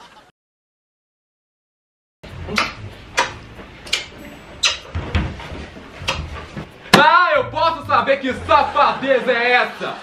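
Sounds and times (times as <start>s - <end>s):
kissing lip smacks: 2.5s - 4.8s.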